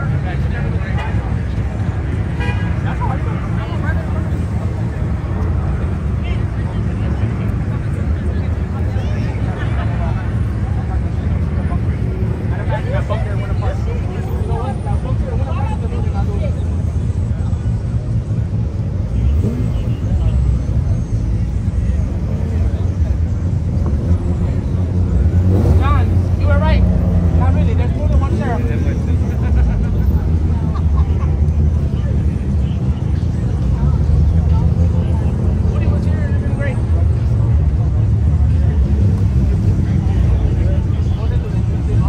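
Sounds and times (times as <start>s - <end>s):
car engines rumbling: 0.0s - 42.0s
crowd voices: 0.0s - 42.0s.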